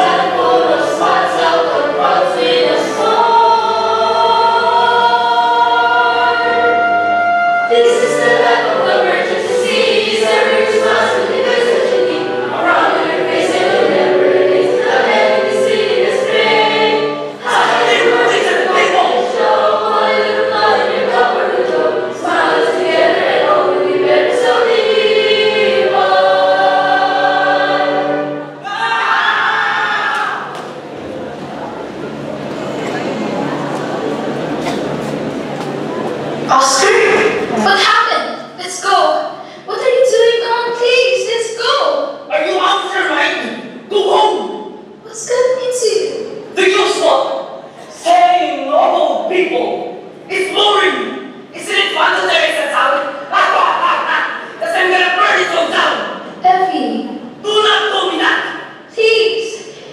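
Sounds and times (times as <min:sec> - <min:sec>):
group singing in chorus: 0:00.0 - 0:28.8
musical accompaniment: 0:00.0 - 0:28.8.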